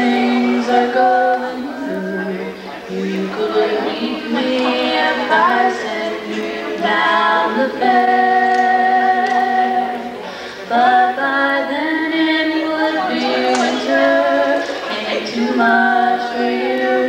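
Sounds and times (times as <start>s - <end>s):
acoustic guitar: 0.0s - 17.0s
woman singing into microphone: 0.0s - 17.0s.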